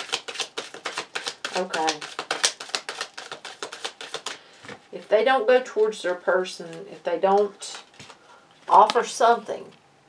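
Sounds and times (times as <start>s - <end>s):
cards being shuffled: 0.0s - 4.9s, 6.6s - 9.1s.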